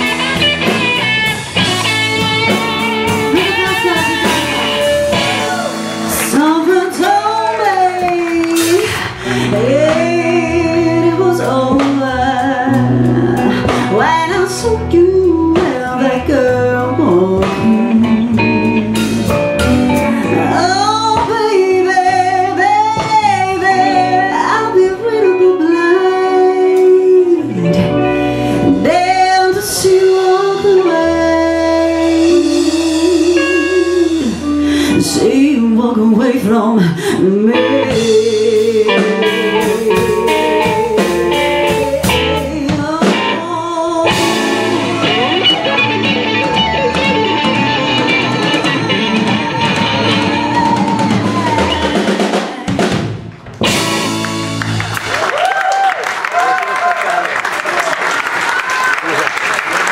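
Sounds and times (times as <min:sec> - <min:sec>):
bass guitar: 0:00.0 - 0:57.0
electric guitar: 0:00.0 - 0:57.9
drums: 0:00.0 - 0:59.9
woman singing with vibrato: 0:02.5 - 0:53.1.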